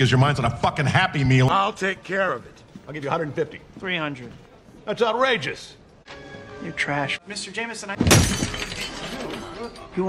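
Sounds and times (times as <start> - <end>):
glass shattering: 8.0 - 9.8.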